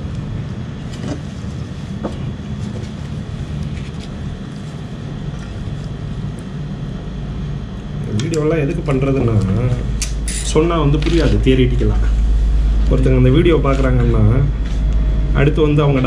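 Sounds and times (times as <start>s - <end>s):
low rumbling background noise: 0.0s - 16.0s.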